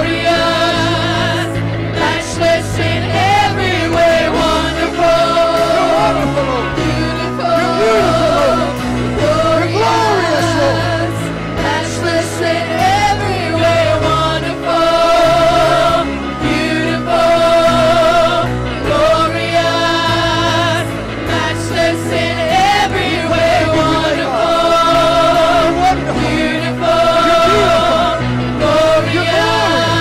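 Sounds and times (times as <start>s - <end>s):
choir singing worship song: 0.0s - 30.0s
live band with bass: 0.0s - 30.0s.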